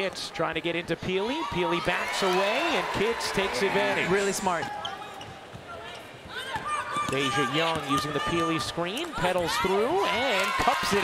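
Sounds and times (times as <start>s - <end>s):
low arena noise: 0.0s - 11.0s.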